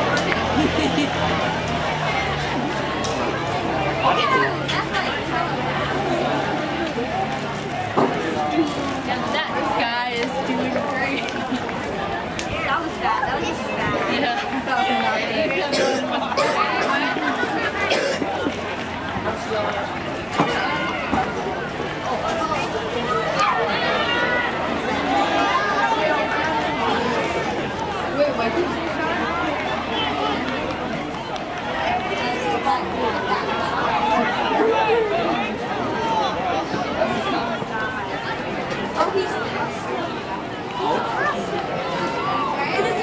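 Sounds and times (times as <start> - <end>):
chatter of voices: 0.0 - 43.0.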